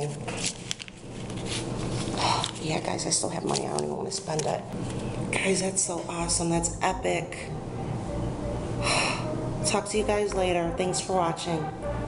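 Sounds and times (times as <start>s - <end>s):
clicks and rustles of handling: 0.0s - 2.7s
steady low hum: 0.0s - 12.0s.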